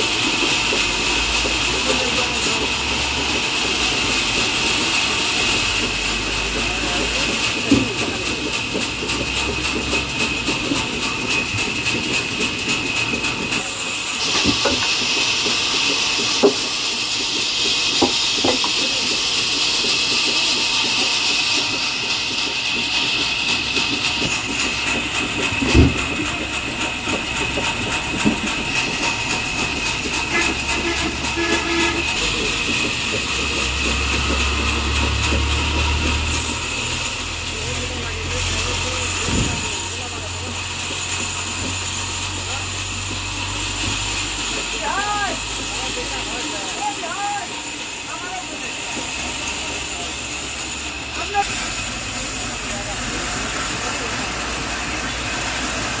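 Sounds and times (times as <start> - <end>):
circular saw whining: 0.0 - 56.0
saw blade cutting wood hiss: 0.0 - 56.0.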